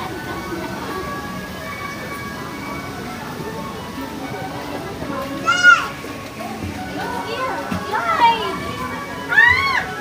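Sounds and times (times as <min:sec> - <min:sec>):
general chatter: 0:00.0 - 0:10.0
children shouting: 0:05.4 - 0:06.1, 0:07.8 - 0:10.0.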